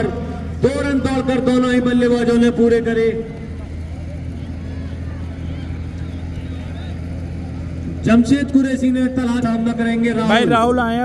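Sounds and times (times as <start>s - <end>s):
faint distant crowd voices: 0.0s - 11.0s.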